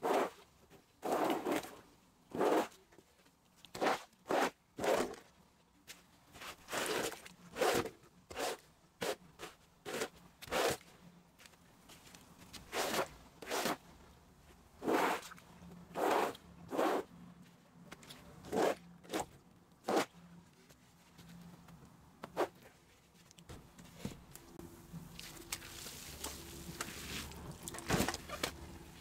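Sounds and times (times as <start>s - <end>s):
hand brush scrubbing wool rug: 2.3s - 2.8s, 25.0s - 27.7s.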